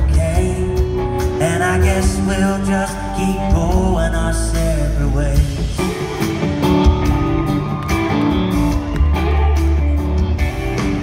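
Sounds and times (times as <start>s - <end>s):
live country-rock band: 0.0s - 11.0s.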